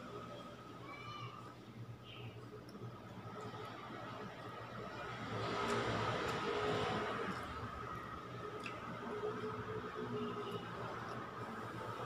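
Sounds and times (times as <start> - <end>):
vehicle passing by: 3.6 - 8.3.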